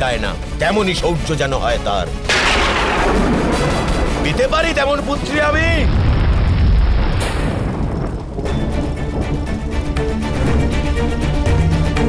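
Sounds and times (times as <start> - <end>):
background music: 0.0 - 6.1, 8.3 - 12.0
booming whoosh of flaring fire: 2.3 - 11.0.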